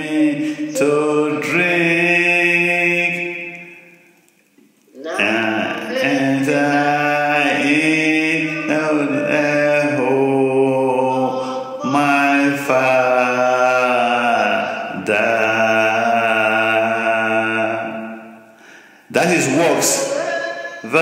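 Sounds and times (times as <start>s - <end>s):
person chanting: 0.0s - 3.9s, 4.9s - 18.3s, 19.1s - 21.0s.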